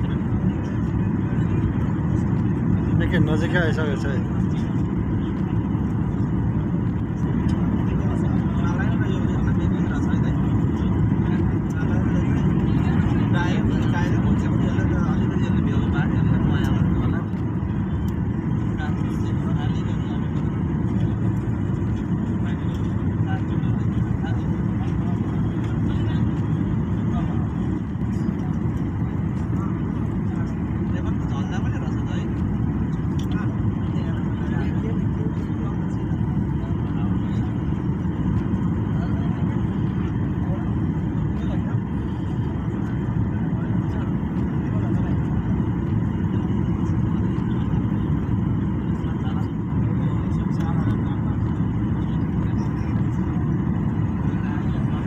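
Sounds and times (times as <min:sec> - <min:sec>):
airliner cabin engine rumble: 0:00.0 - 0:55.0.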